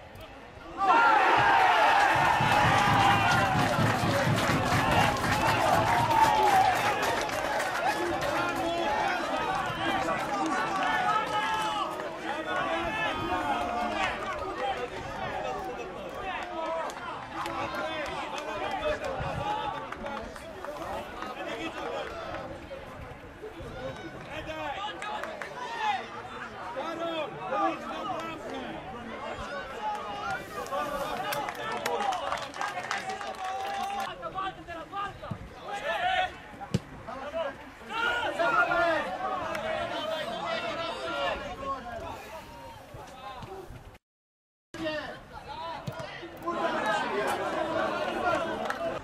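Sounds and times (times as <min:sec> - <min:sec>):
men shouting and cheering: 0:00.7 - 0:19.8, 0:37.2 - 0:41.9, 0:46.4 - 0:49.0
sharp hand claps: 0:02.0 - 0:08.7.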